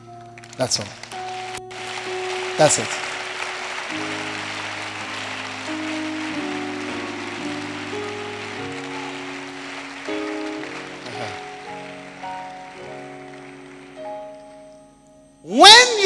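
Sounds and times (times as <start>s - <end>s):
congregation clapping: 0.0s - 14.8s
keyboard playing sustained chords: 0.0s - 16.0s.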